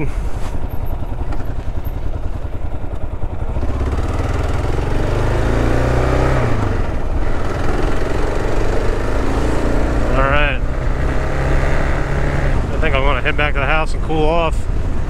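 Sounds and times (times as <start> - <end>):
motorcycle engine accelerating: 0.0 - 15.0.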